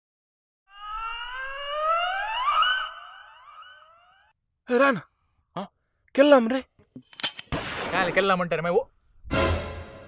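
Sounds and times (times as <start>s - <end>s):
siren-like rising tone: 0.7s - 4.4s.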